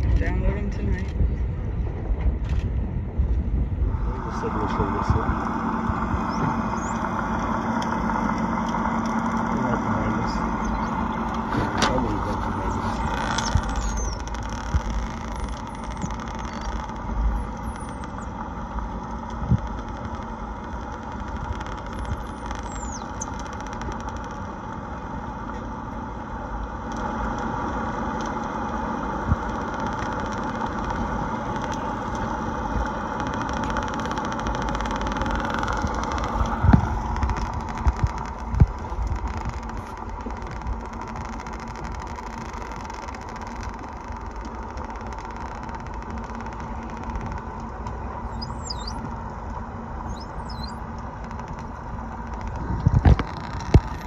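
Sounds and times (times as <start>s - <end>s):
engine drone underwater: 0.0s - 54.0s
dolphin whistles: 48.3s - 49.0s, 50.0s - 50.8s.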